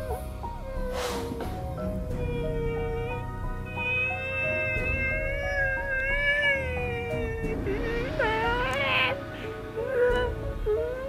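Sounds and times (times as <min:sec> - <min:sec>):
background music: 0:00.0 - 0:11.0
man wailing: 0:02.2 - 0:09.2.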